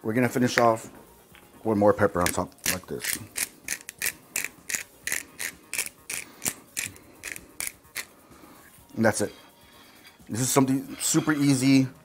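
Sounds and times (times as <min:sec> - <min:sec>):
pepper grinder grinding: 0:02.2 - 0:08.1.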